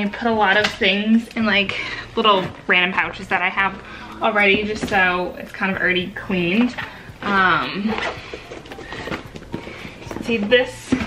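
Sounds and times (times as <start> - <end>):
pouches rustling: 6.2 - 11.0
items clicking in plastic bin: 6.6 - 11.0.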